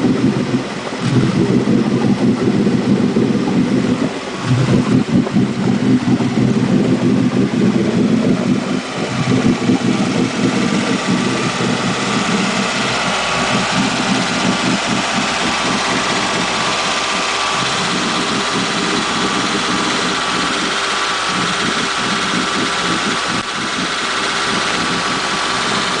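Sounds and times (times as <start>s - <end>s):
boat engine idling: 0.0s - 26.0s
churning water: 0.0s - 26.0s.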